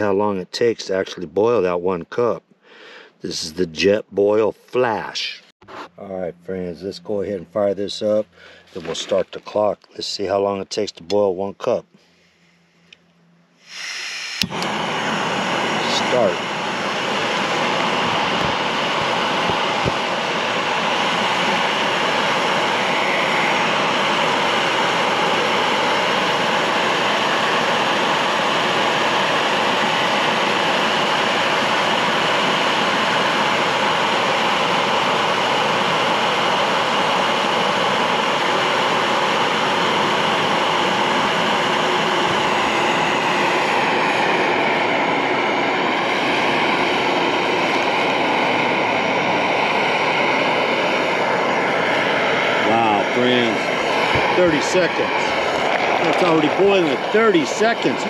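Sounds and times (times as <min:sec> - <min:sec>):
gas stove burner running: 0:06.2 - 0:58.0
water boiling: 0:14.5 - 0:58.0.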